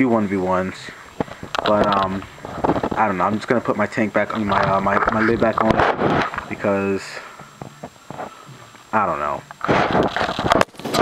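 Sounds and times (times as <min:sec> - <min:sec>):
plastic hopper clicks and rubbing: 0:04.3 - 0:06.5.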